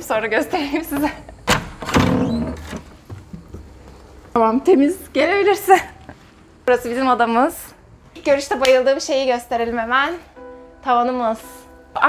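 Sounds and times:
door swinging open: 1.0 - 3.4.

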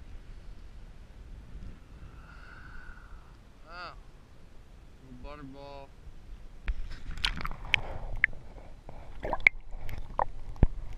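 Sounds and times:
water sloshing and dripping: 7.1 - 8.4
high bubbly plinks: 9.2 - 10.3.

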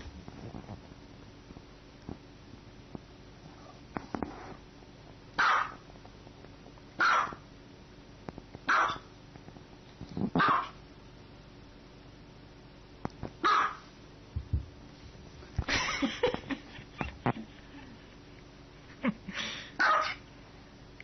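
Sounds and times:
dog barking: 5.4 - 5.8, 7.0 - 7.4, 8.7 - 9.1, 10.4 - 10.8, 13.4 - 13.8, 19.8 - 20.2.

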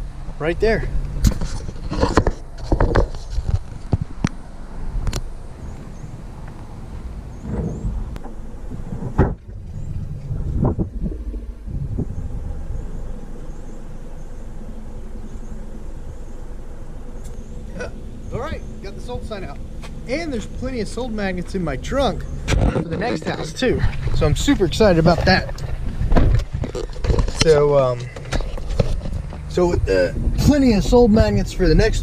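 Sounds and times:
car engine idling: 0.0 - 32.0
car door shutting: 5.0 - 12.2.

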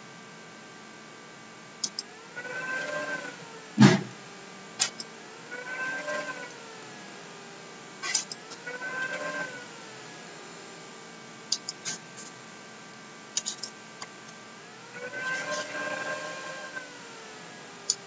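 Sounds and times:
computer mouse clicks: 1.8 - 2.1, 11.5 - 12.0, 13.4 - 13.8
heavy thump: 3.8 - 4.1.

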